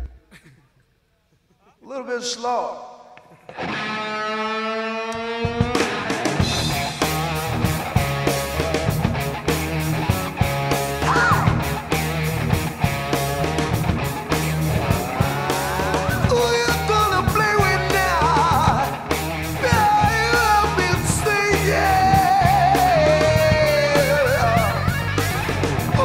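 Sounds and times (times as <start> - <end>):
distorted electric guitar: 3.2 - 26.0
bass guitar: 3.5 - 26.0
drum kit: 5.4 - 26.0.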